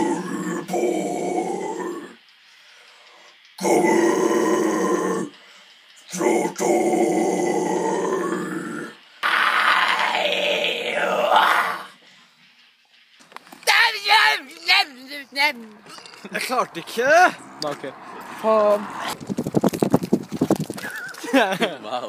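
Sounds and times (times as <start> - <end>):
harsh growled metal vocals: 0.0 - 2.3, 3.6 - 12.0.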